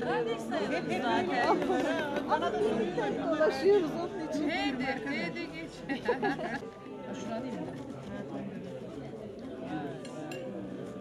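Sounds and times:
overlapping chatter in a hall: 0:00.0 - 0:11.0.

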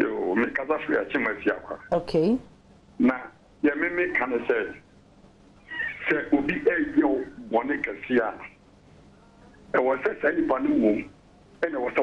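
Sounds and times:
person talking over telephone: 0:05.7 - 0:08.5.

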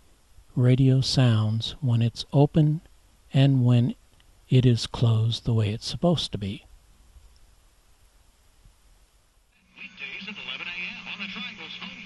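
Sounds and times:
faint hiss: 0:00.0 - 0:12.0
steady hum: 0:00.0 - 0:12.0
man's voice from radio loudspeaker: 0:09.7 - 0:12.0.

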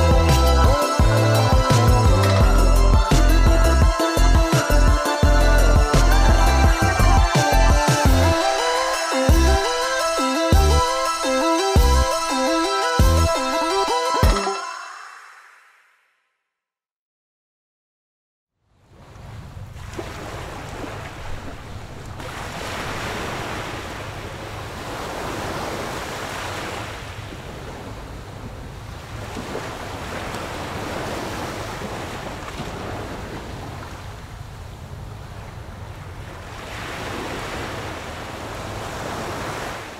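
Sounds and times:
wind rumble on microphone: 0:23.3 - 0:39.9.

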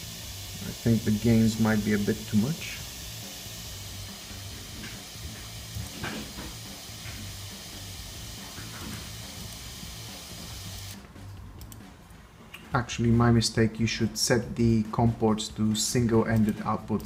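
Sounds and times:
steady hiss: 0:00.0 - 0:11.0
faint music through small speaker: 0:00.0 - 0:17.0.

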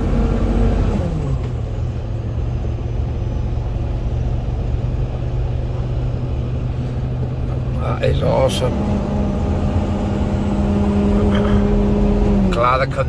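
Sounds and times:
truck diesel engine: 0:00.0 - 0:13.0.

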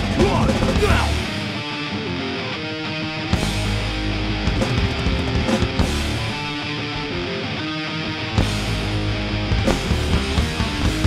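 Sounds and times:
drums with cymbal crashes: 0:00.0 - 0:01.4, 0:04.5 - 0:06.6, 0:08.4 - 0:11.0.

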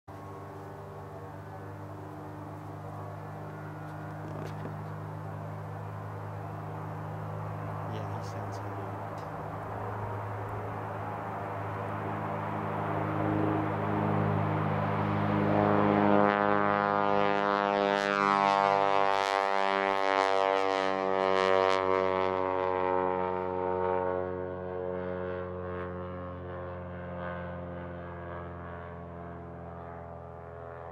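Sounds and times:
aircraft piston engine idling: 0:00.1 - 0:15.1
propeller plane engine drone: 0:00.1 - 0:30.9.

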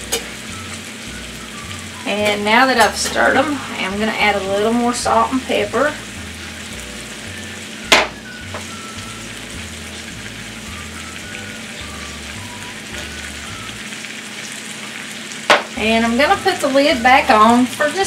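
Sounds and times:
potatoes sizzling in oil: 0:00.0 - 0:18.0
sharp knock: 0:07.9 - 0:08.2.

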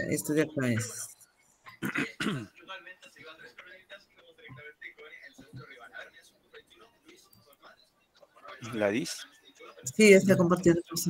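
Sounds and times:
person clearing throat: 0:01.7 - 0:02.6.

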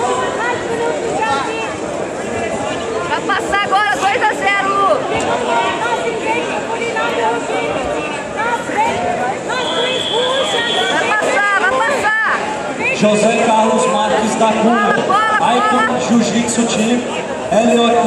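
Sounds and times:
babble of many voices: 0:00.0 - 0:18.0
people shouting: 0:08.4 - 0:13.0.

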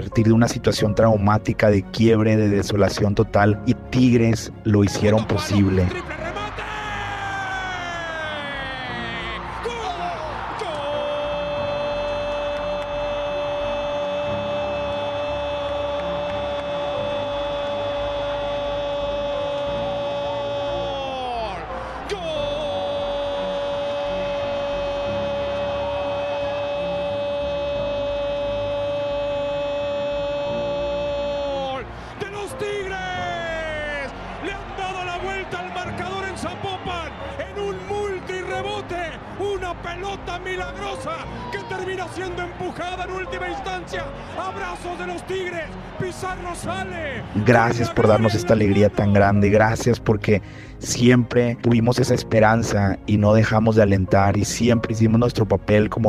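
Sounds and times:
fast excited commentary: 0:00.0 - 0:11.6, 0:31.4 - 0:56.0
commentator long shout: 0:04.9 - 0:49.5.

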